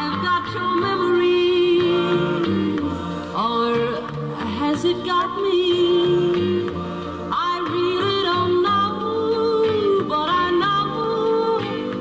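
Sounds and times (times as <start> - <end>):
sliding lead melody: 0.0 - 12.0.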